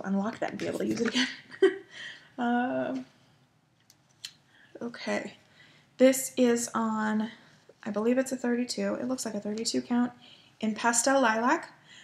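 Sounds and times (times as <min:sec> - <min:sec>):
woman speaking: 0:00.0 - 0:01.4, 0:02.4 - 0:03.1, 0:04.8 - 0:05.4, 0:06.0 - 0:11.8.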